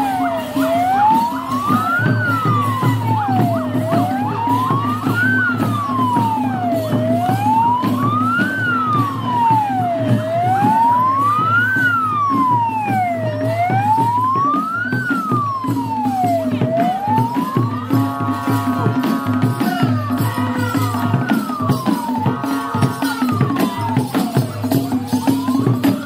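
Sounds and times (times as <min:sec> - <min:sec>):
ambulance siren wailing: 0:00.0 - 0:26.0
hand drums beating: 0:00.0 - 0:26.0.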